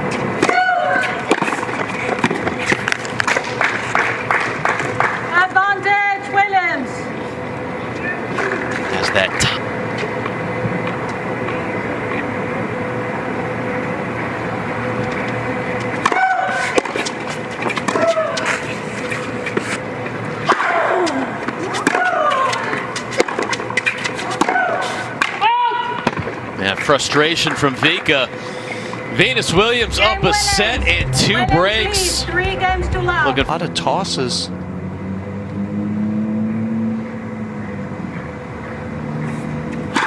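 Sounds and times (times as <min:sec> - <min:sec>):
background noise: 0:29.0 - 0:34.6.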